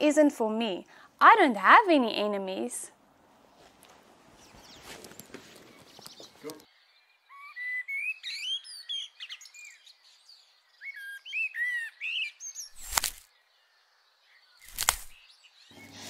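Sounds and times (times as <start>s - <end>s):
birds chirping: 4.1s - 16.0s.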